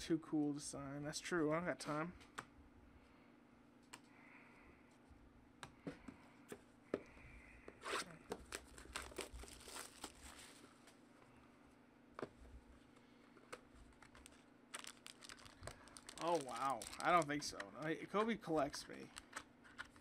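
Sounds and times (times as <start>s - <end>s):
packaging crinkling and tearing: 8.3s - 10.6s, 13.9s - 20.0s
foil wrapping pried open: 8.4s - 10.6s, 14.1s - 17.4s.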